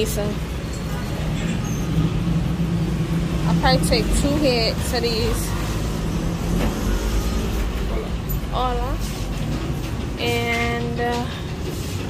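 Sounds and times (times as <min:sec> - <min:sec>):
engine humming steadily: 0:00.0 - 0:12.0.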